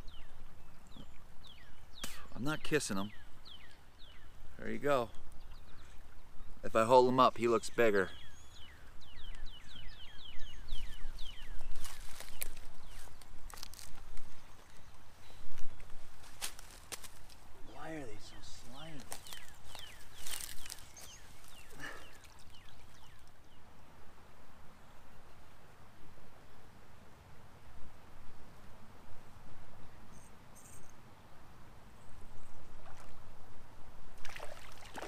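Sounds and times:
bird chirping: 0.0s - 13.3s, 17.7s - 23.6s.

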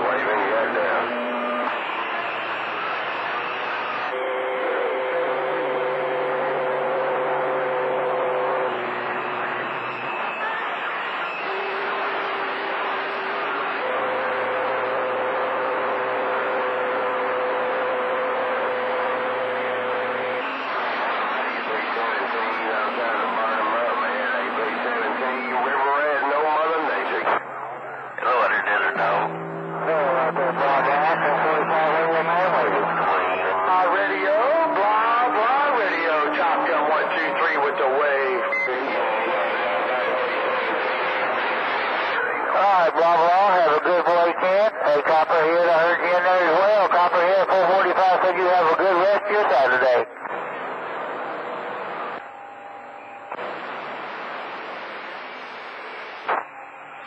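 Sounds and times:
radio whistle tones: 0.0s - 27.4s, 28.2s - 50.4s, 54.9s - 57.0s
radio static: 0.0s - 52.2s, 53.3s - 56.6s
garbled distant voices: 21.3s - 50.6s.

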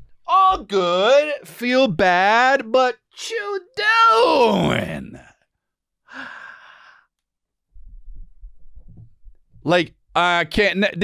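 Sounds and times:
man sighing: 6.1s - 7.0s
low bumps: 7.8s - 9.7s.

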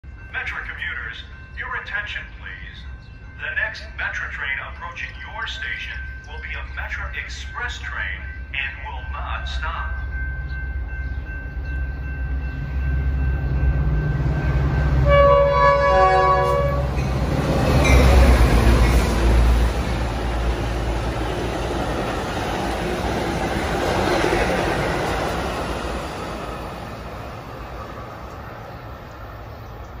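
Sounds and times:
diesel locomotive rumble: 0.1s - 30.0s
train cars rushing by: 3.4s - 30.0s
train horn blast: 14.4s - 17.0s.

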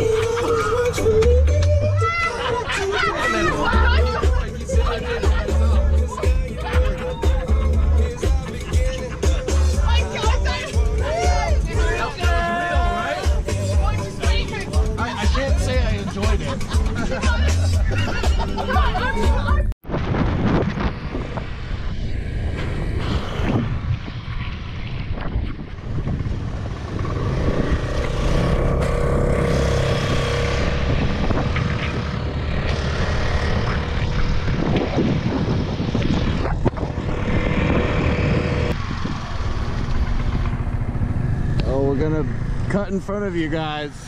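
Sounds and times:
road and wind noise: 0.0s - 44.0s
motor scooter engine running: 25.8s - 43.9s.

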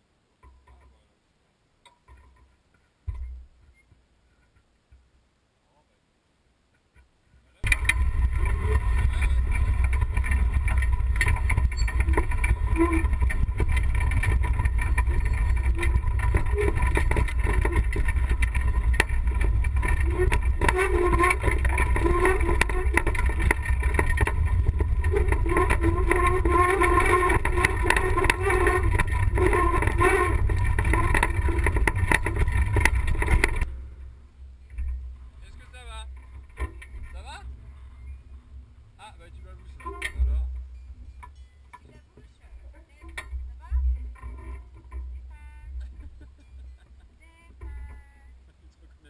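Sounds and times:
wheelchair rattling on dirt track: 7.6s - 33.9s, 34.7s - 48.4s.

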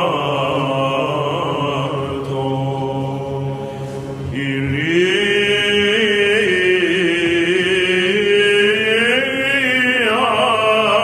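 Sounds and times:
men chanting over low drone: 0.0s - 11.0s.

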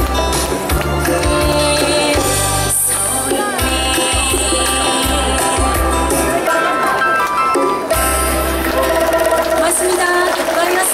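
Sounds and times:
live band playing a ballad: 0.0s - 10.5s.

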